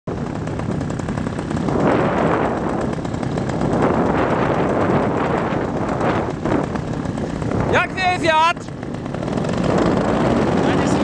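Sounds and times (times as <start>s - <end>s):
paramotor engine rattling: 0.1s - 11.0s.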